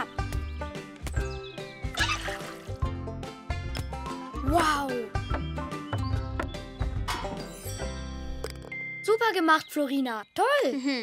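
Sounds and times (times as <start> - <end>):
cheerful cartoon music: 0.0 - 9.5.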